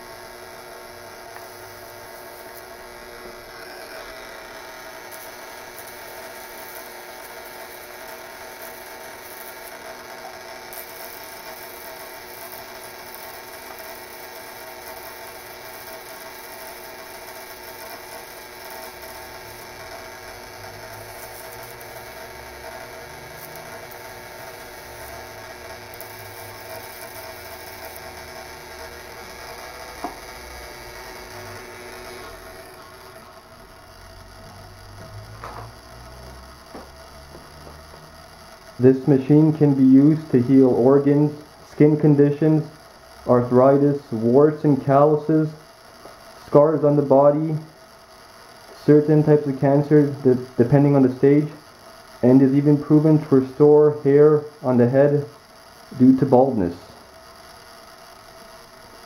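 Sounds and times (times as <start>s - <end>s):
steady electrical buzz: 0.0s - 59.0s.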